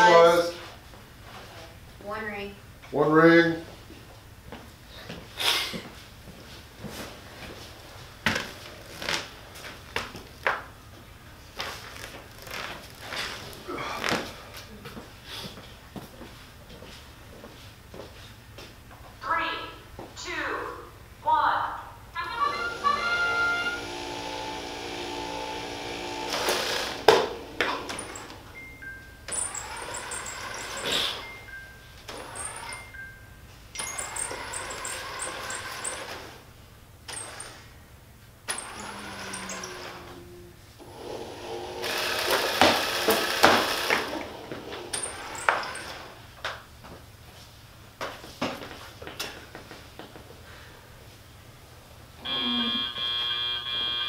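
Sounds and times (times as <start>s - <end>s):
electric motors whining: 22.2s - 28.5s, 29.3s - 31.5s, 32.1s - 33.0s, 33.8s - 36.4s, 38.5s - 46.1s, 52.2s - 54.0s.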